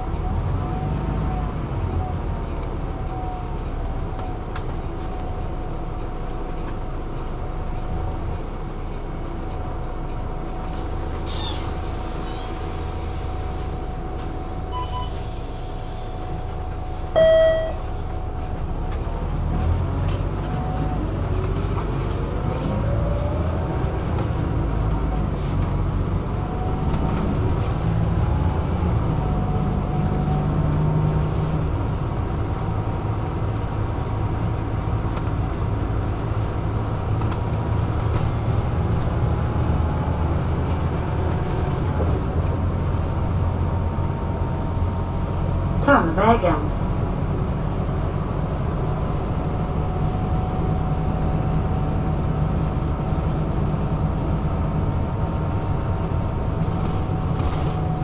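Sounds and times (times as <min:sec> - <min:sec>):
bus drive whine: 0:00.0 - 0:58.0
bus rumble: 0:00.0 - 0:58.0
short beep: 0:14.7 - 0:15.2, 0:17.2 - 0:18.0.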